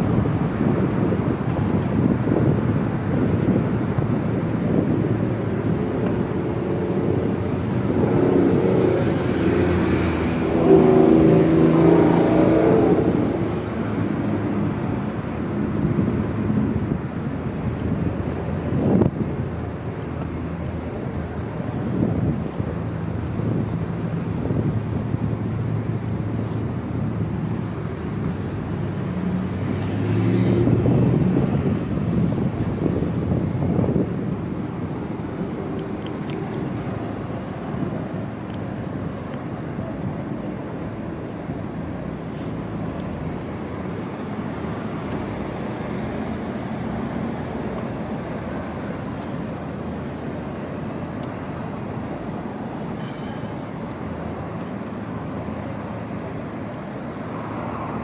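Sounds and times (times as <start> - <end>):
steady traffic hum: 0.0 - 58.0
vehicles passing: 0.0 - 58.0.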